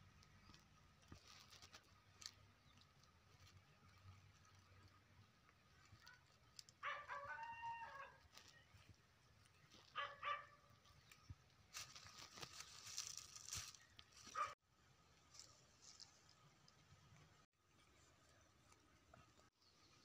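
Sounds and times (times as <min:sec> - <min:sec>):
rustling noise: 0:00.4 - 0:04.6, 0:08.0 - 0:14.6
faint rooster crowing: 0:06.8 - 0:08.3.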